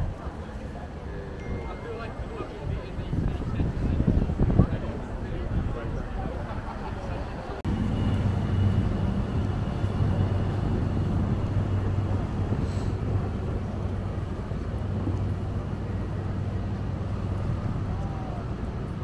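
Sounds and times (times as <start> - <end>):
low engine drone: 0.0 - 19.0
outdoor traffic noise: 0.0 - 19.0.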